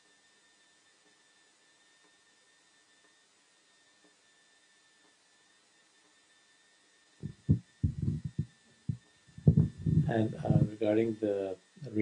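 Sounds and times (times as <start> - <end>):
microphone handling thumps: 7.2 - 10.7.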